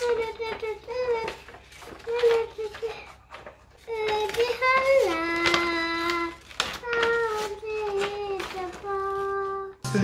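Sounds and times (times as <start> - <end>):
girl singing: 0.0 - 1.4, 2.0 - 3.1, 3.8 - 9.8.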